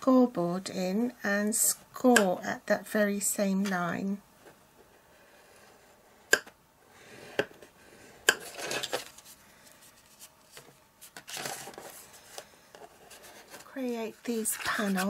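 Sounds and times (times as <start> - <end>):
card rustling: 8.4 - 15.0.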